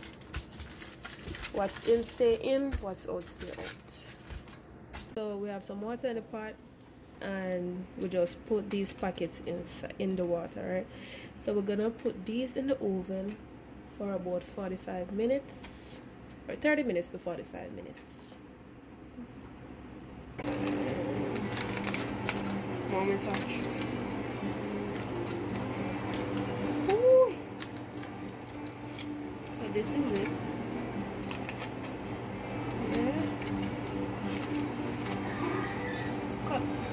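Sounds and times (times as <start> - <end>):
aluminium foil crinkling: 0.0 - 5.2, 8.0 - 10.8, 20.4 - 36.9
steady machine hum: 18.4 - 36.9.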